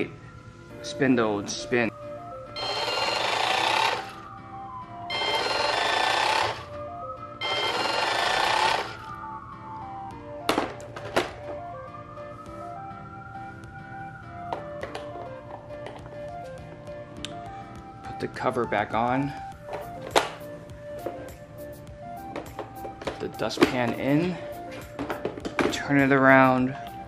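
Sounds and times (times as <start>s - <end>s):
soft background music: 0.0s - 27.0s
robot vacuum motor whining: 2.6s - 4.3s, 5.1s - 6.7s, 7.4s - 9.1s.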